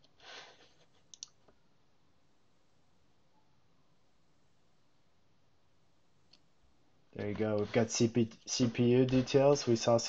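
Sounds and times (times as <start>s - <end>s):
computer mouse clicks: 1.0s - 1.6s.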